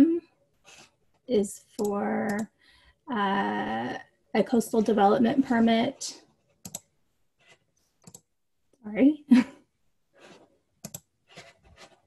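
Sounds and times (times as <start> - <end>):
woman speaking: 0.0 - 0.2, 1.3 - 2.5, 3.1 - 6.2, 8.8 - 9.5
computer mouse clicks: 1.8 - 2.5, 6.6 - 8.3, 10.2 - 12.0.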